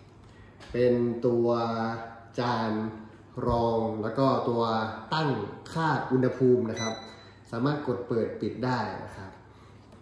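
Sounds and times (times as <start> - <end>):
man talking: 0.6 - 9.5.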